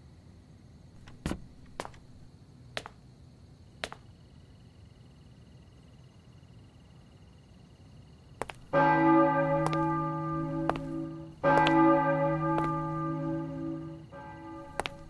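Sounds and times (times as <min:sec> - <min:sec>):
large bell striking: 0:08.7 - 0:15.0.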